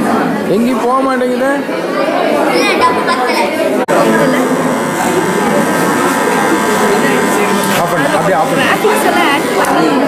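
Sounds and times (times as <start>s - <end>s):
voices chattering: 1.5s - 10.0s
small motor buzzing whine: 3.9s - 9.8s.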